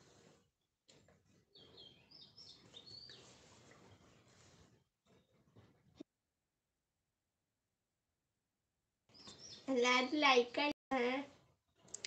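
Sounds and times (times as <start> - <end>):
faint bird chirping: 1.3 - 5.4, 9.1 - 10.5.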